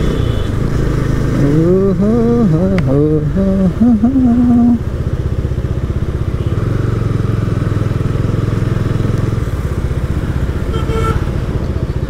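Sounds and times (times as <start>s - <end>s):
motorcycle engine running: 0.0s - 12.0s
road and traffic noise: 0.0s - 12.0s.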